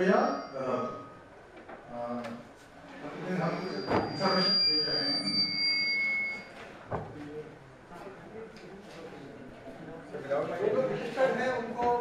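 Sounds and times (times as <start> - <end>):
high-pitched ringing tones: 0.0 - 1.4, 3.0 - 6.6.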